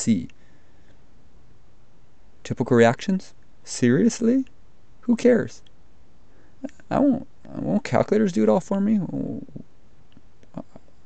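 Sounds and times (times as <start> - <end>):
person speaking: 0.0 - 0.4, 2.4 - 5.7, 6.6 - 9.7, 10.4 - 10.8
microphone hiss: 0.0 - 11.0.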